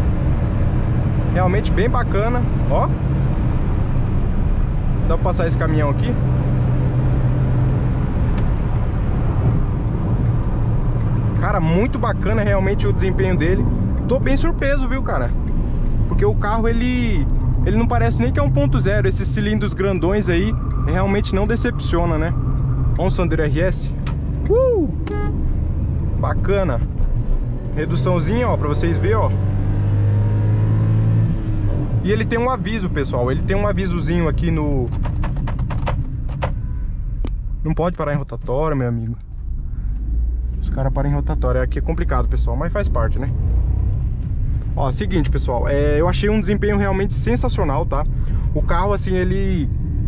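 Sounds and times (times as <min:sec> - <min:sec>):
car engine at high revs: 0:00.0 - 0:36.6
road and wind noise: 0:00.0 - 0:50.0.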